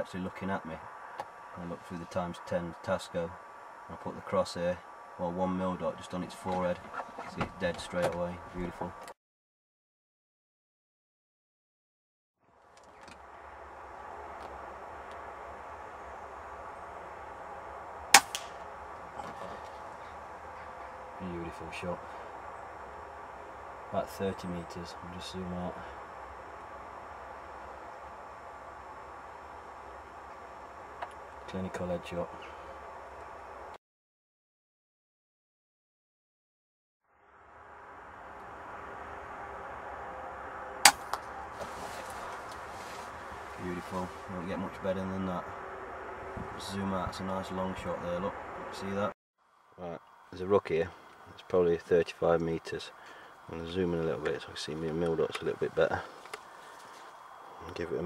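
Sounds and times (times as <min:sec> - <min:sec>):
steady background noise: 0:00.0 - 0:09.1, 0:12.6 - 0:33.8, 0:37.4 - 0:58.0
outdoor background noise: 0:00.0 - 0:09.2, 0:12.4 - 0:33.8, 0:37.1 - 0:58.0
air rifle shot: 0:18.1 - 0:18.6
pellet striking: 0:18.2 - 0:18.6.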